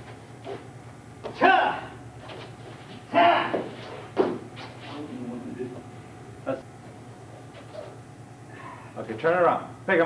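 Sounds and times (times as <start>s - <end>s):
man shouting: 1.3s - 2.0s, 3.1s - 3.6s.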